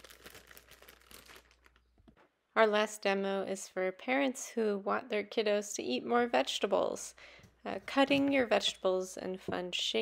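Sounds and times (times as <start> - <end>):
plastic bag crinkling: 0.0 - 2.0.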